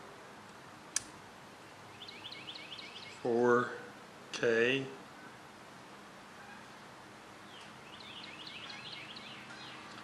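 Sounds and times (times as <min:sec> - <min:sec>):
sharp click: 0:00.9 - 0:01.2
small bird chirping: 0:01.9 - 0:03.3, 0:07.4 - 0:10.0.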